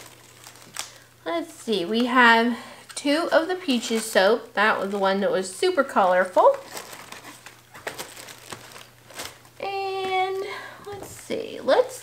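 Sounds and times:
packing paper rustling: 0.0s - 11.9s.

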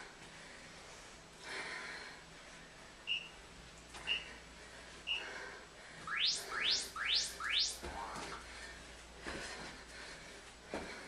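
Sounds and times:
electronic timer beep: 3.1s - 3.4s, 6.1s - 8.4s
quick rising electronic chirps: 6.1s - 8.4s.

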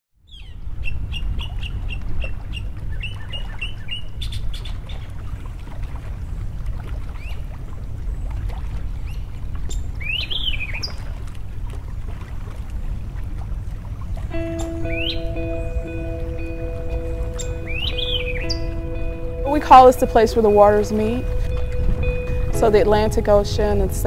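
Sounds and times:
rising and falling bird call: 14.3s - 19.5s
birds chirping and calling: 14.3s - 24.0s
steady low rumble: 14.3s - 24.0s.

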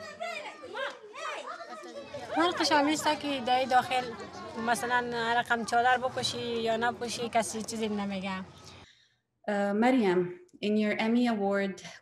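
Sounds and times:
woman talking: 9.5s - 12.0s.

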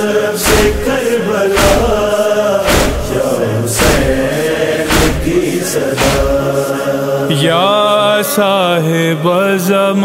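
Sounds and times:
male chorus chanting a lament: 0.0s - 10.0s
rhythmic chest-beating: 0.4s - 7.3s.

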